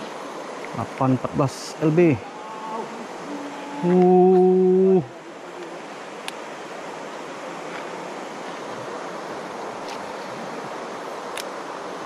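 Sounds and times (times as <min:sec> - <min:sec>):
river water rushing: 0:00.0 - 0:12.0
man speaking: 0:00.8 - 0:02.3
man exclaiming ooh: 0:03.6 - 0:05.3.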